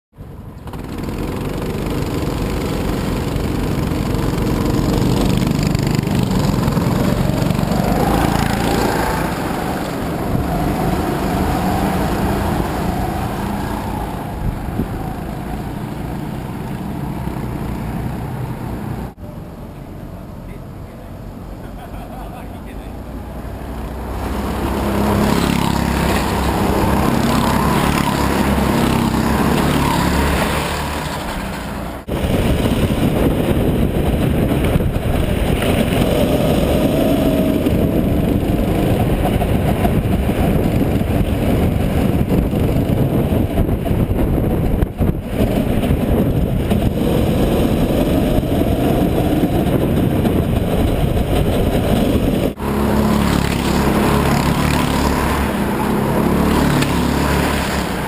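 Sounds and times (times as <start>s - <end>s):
go-kart engine passing: 0.2s - 58.0s
go-kart engine running hard: 0.3s - 19.2s, 23.4s - 58.0s.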